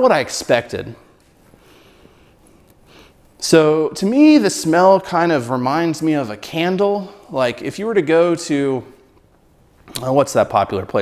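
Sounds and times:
person sniffing: 1.6 - 3.2.

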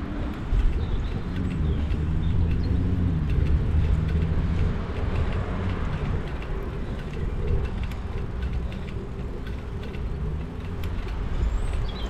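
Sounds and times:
bicycle tyres rolling on tarmac: 0.0 - 12.0
wind rumble on microphone: 0.0 - 12.0
faint light clicks: 0.2 - 12.0.

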